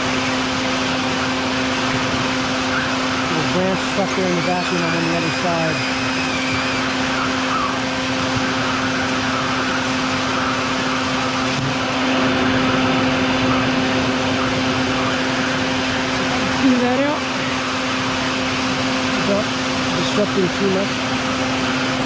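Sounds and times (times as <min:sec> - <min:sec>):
pitch sweep: 0:00.0 - 0:22.0
vacuum humming: 0:00.0 - 0:22.0.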